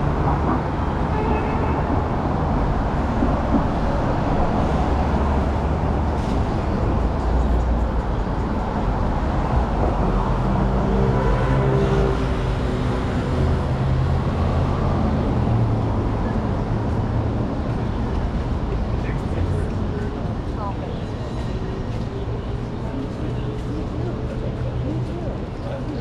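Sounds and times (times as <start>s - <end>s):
road noise: 0.0s - 26.0s.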